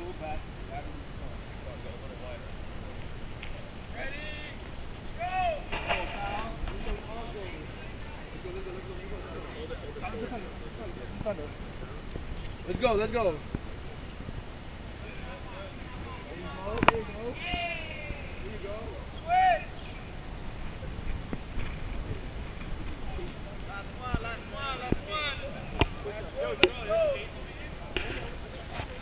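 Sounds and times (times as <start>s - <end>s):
outdoor training background: 0.0s - 29.0s
distant people shouting: 3.9s - 10.8s, 14.9s - 20.4s, 23.1s - 27.9s
person shouting: 5.2s - 5.7s.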